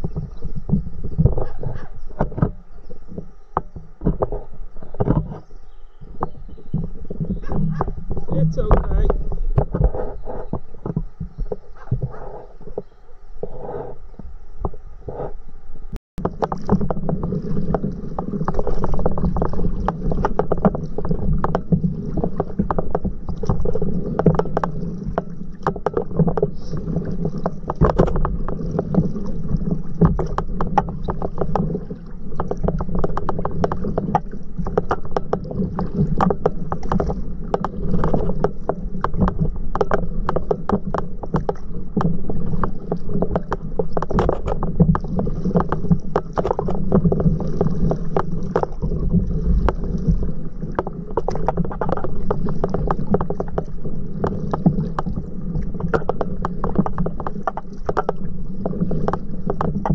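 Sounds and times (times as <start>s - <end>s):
small irregular knocks: 0.0s - 13.6s, 16.2s - 59.9s
paddle strokes splashing: 0.0s - 15.4s, 16.2s - 59.9s
steady low rumble: 0.0s - 34.7s
water slapping against board: 16.2s - 59.9s.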